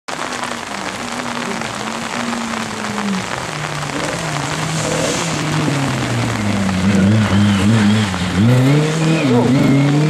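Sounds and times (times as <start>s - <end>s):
rain and wet spray hissing: 0.1s - 10.0s
faint car engine: 0.2s - 10.0s.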